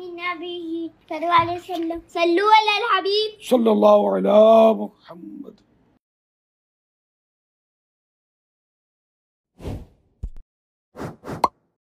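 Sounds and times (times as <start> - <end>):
quick whooshes: 9.6 - 10.0, 11.0 - 11.5.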